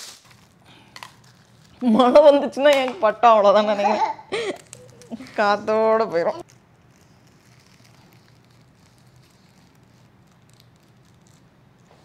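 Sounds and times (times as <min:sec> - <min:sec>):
pencil scratching tissue paper: 0:06.2 - 0:12.0.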